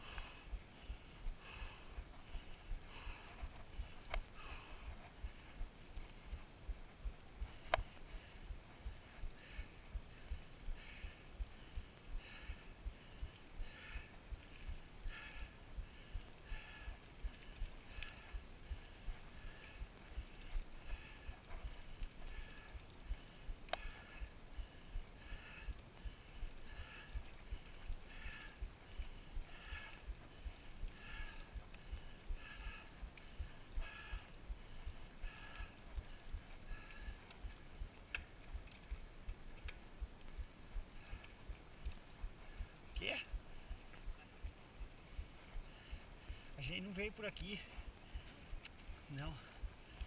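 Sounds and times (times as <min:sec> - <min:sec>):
sharp clicks: 0:23.7 - 0:24.3.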